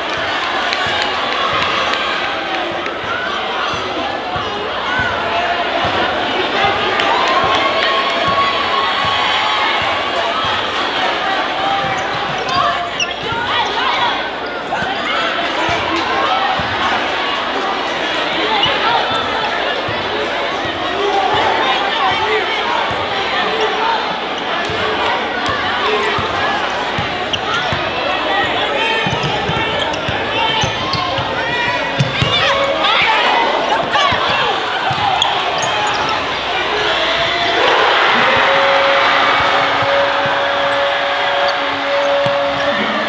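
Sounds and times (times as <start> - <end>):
crowd chatter: 0.0 - 43.0
crowd cheering: 0.0 - 43.0.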